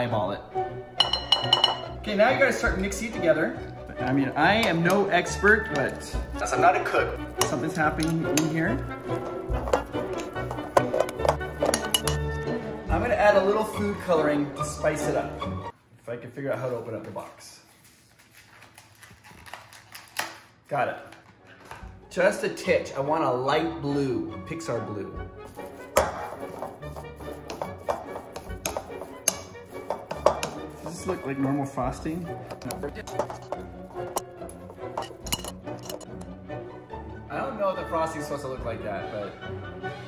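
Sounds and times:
background music: 0.0 - 16.0, 20.7 - 40.0
utensil scraping a glass bowl: 4.6 - 12.2, 25.5 - 36.2.

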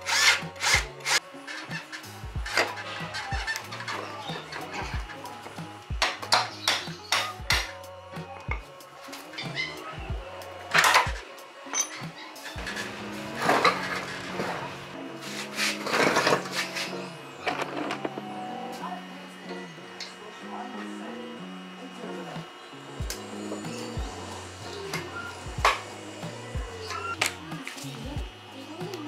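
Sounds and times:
background music with steady beat: 0.0 - 29.0
hand tools clanking on metal: 10.7 - 14.5.

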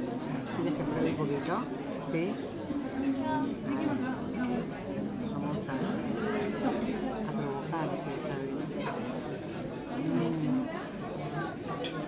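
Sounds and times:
cafe guests chattering: 0.0 - 12.0.

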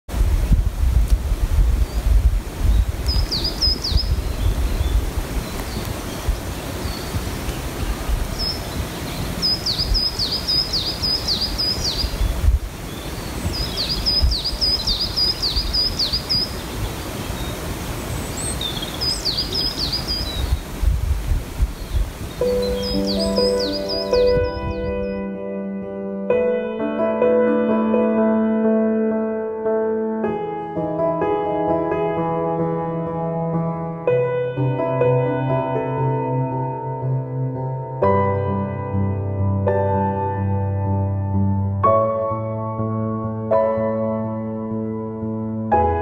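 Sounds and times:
wind rumble on microphone: 0.1 - 25.4
soft ambient music: 0.2 - 46.0
songbird chirping: 1.8 - 21.0, 21.6 - 25.5.

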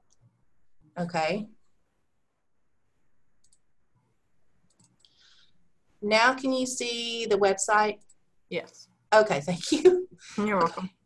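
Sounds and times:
faint computer mouse clicks: 3.4 - 3.7, 4.6 - 5.2.

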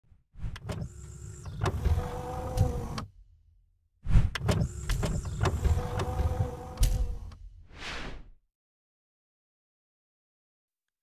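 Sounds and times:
motorised whirring with clicks: 0.6 - 3.1, 4.4 - 7.4
steady mechanical hum: 0.8 - 3.1, 4.5 - 7.4.

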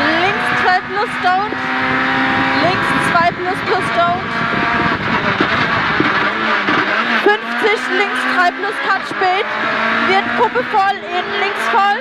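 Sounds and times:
rally car engine braking: 0.0 - 12.0
road noise inside car: 0.0 - 12.0.

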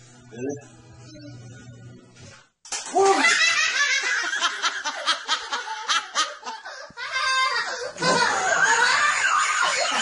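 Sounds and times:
young child laughing: 7.0 - 10.0.

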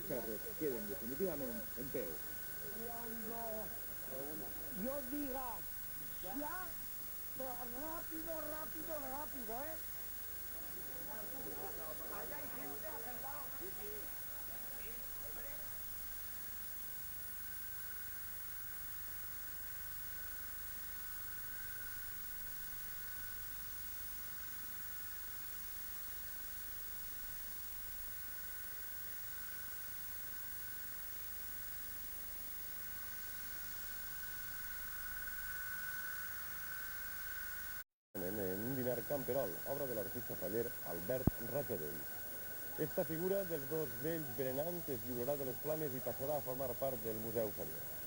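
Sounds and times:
faint wavering high whine: 0.0 - 48.0
videotape hiss: 0.0 - 48.0.

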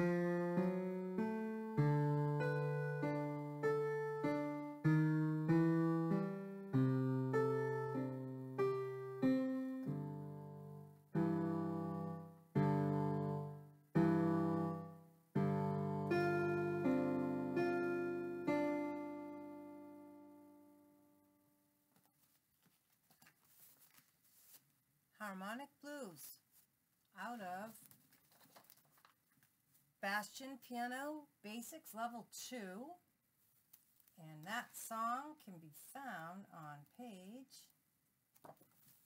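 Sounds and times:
digital piano blues piece: 0.0 - 20.7
faint rustling: 21.9 - 24.8, 38.4 - 39.0.

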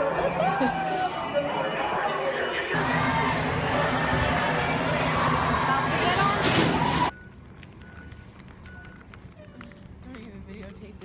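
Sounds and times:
faint voices: 0.0 - 7.1.

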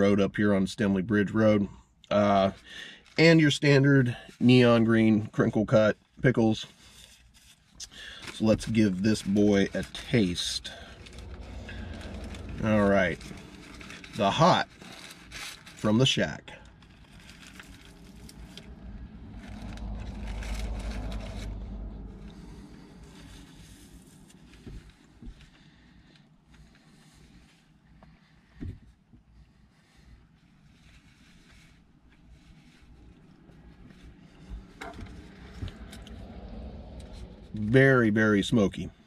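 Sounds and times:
paper wrapper rustling: 6.8 - 27.4
low rumble: 7.8 - 28.6, 30.8 - 38.1.

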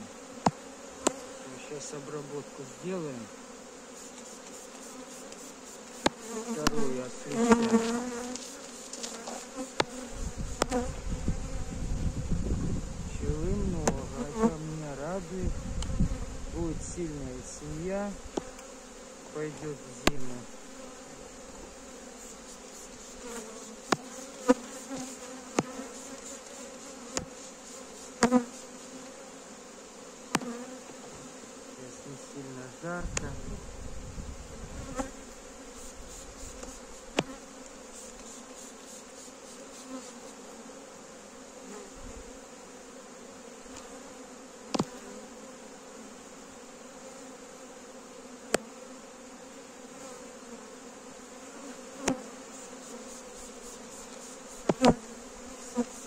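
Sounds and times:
honeybees buzzing: 0.0 - 56.0
wooden frames knocking on hive: 0.4 - 1.4, 4.0 - 11.0, 13.5 - 14.5, 20.0 - 20.4, 22.8 - 26.4, 27.0 - 27.4, 30.3 - 31.3, 36.6 - 37.4, 44.7 - 45.0, 52.0 - 55.1.

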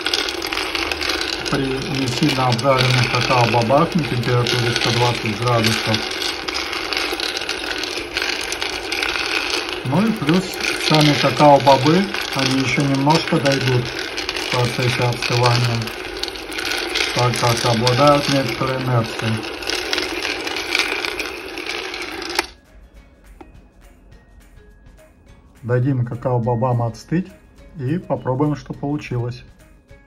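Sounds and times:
beans rattling in roaster pan: 0.0 - 22.6.

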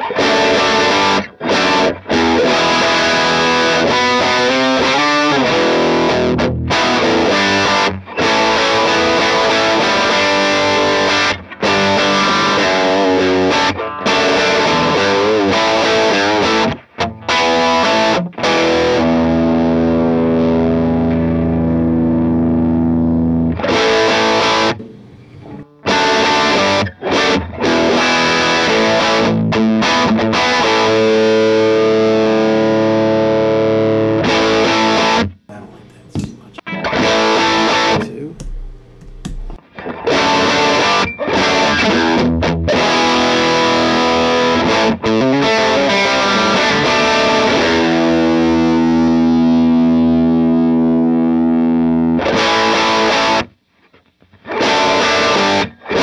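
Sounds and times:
overdriven electric guitar: 0.0 - 35.4, 36.1 - 56.0.

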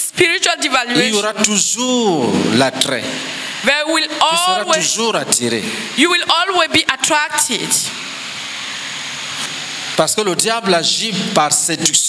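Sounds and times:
sound system hiss: 0.0 - 12.0.

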